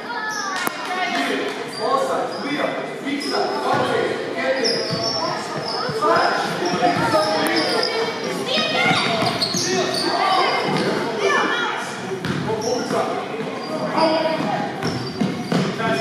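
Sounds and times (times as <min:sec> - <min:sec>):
sneakers squeaking: 0:00.0 - 0:16.0
voices echoing in a hall: 0:00.0 - 0:16.0
basketball bouncing on wooden court: 0:08.8 - 0:09.6, 0:12.2 - 0:12.5, 0:14.3 - 0:15.8.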